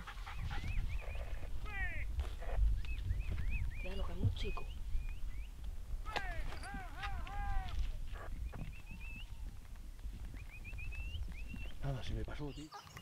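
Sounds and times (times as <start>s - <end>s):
distant dogs yelping and baying: 0.0s - 3.8s, 6.2s - 9.7s
wind rumble on microphone: 0.0s - 12.5s.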